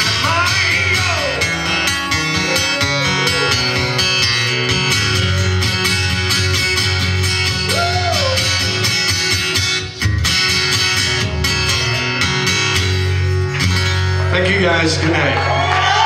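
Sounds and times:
acoustic guitar strumming: 0:00.0 - 0:15.4.

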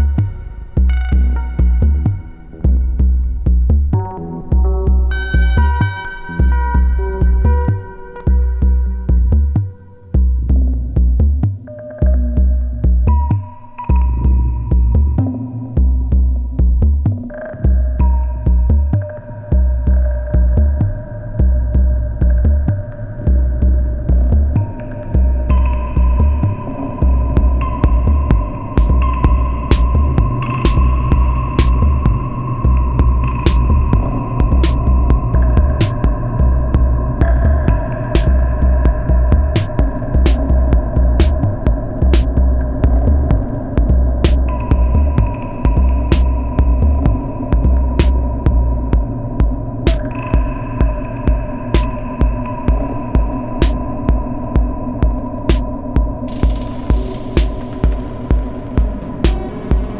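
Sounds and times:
deep pulsing synth bass: 0:00.0 - 0:59.9
sustained droning synth tones: 0:00.0 - 0:59.9
sharp hi-hat-like clicks: 0:37.7 - 0:38.5, 0:49.9 - 0:50.5, 0:51.8 - 0:52.8, 0:53.6 - 0:53.8, 0:56.3 - 0:59.9.

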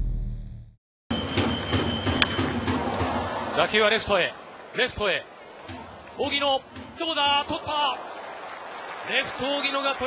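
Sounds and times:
stadium crowd noise: 0:01.1 - 0:10.0.

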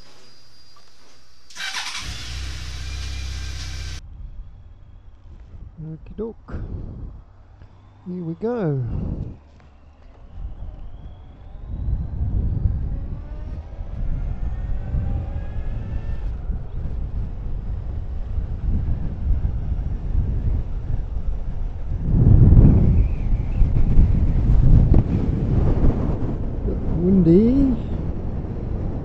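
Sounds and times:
motorcycle engine accelerating: 0:00.0 - 0:05.8, 0:08.8 - 0:27.4
wind rumble: 0:00.0 - 0:29.0.

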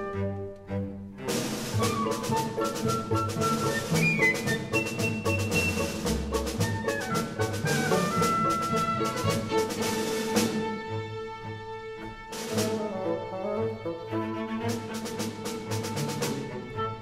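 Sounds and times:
strings holding notes: 0:00.0 - 0:17.0.

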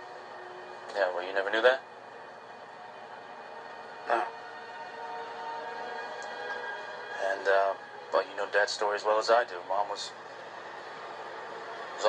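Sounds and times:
soft music from tv speaker: 0:00.0 - 0:12.0.

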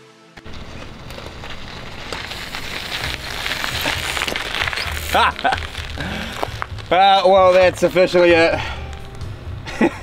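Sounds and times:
bike tyres crunching over gravel: 0:00.4 - 0:09.9.

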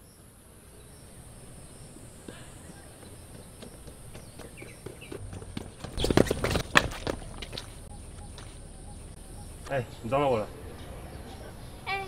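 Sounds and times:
footsteps on tiled stairs: 0:01.8 - 0:08.6.

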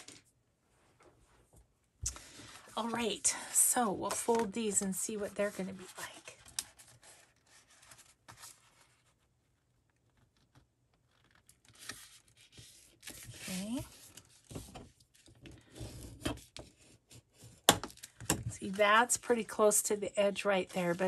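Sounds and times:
paper rustling and rubbing: 0:04.0 - 0:09.3, 0:11.1 - 0:15.3, 0:20.2 - 0:21.0.

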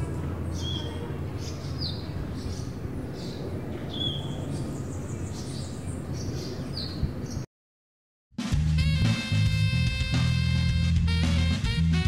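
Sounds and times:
birds chirping: 0:00.0 - 0:07.5.

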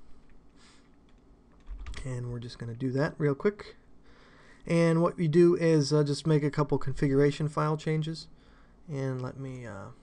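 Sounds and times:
computer keyboard keystrokes: 0:01.0 - 0:02.0.

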